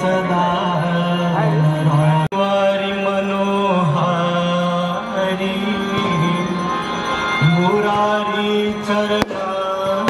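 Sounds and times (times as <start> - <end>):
devotional chant with held notes: 0.0 - 10.0
music: 0.0 - 10.0.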